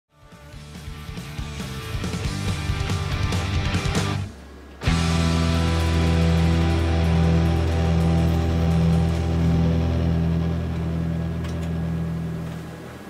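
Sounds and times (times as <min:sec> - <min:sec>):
electric guitar chord ringing: 0:00.8 - 0:12.6.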